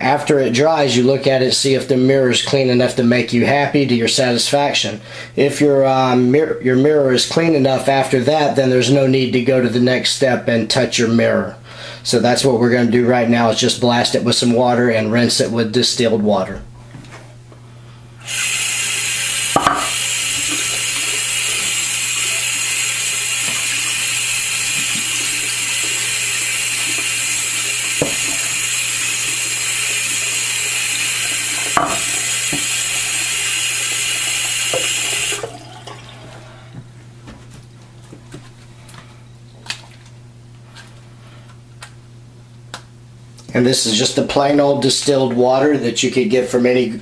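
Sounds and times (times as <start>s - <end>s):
tap water running: 18.2s - 36.9s
knocks and drips: 19.6s - 20.0s, 31.7s - 32.7s.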